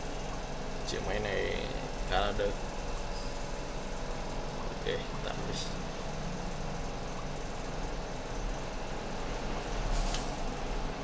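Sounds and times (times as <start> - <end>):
short hiss: 9.9 - 10.4.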